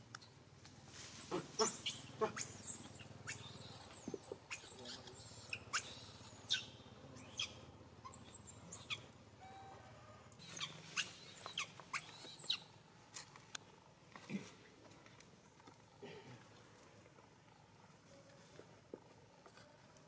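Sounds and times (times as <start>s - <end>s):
monkey short chirps: 1.3s - 9.0s
young monkey squealing: 1.3s - 9.6s, 10.4s - 12.7s.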